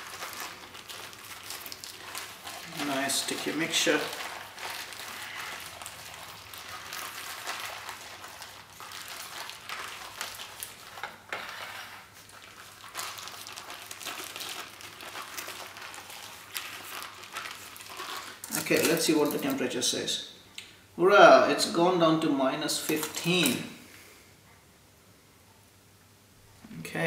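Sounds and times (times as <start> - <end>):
plastic bag crinkling: 0.0 - 19.8, 22.7 - 23.8.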